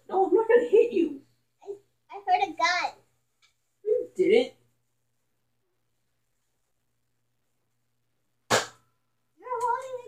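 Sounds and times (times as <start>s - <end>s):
sharp smack: 8.5s - 8.8s.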